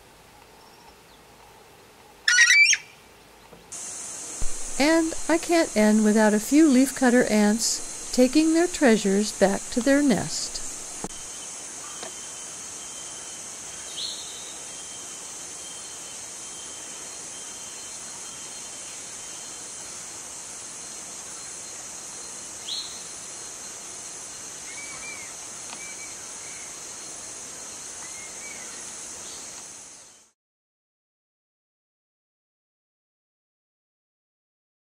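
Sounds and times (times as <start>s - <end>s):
soft arched bird calls: 2.2s - 3.0s, 24.6s - 27.2s
short bird chirps: 2.3s - 2.9s.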